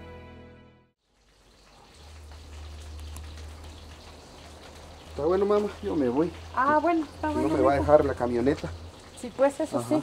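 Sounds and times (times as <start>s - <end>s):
steady hiss with crackles: 1.0s - 10.0s.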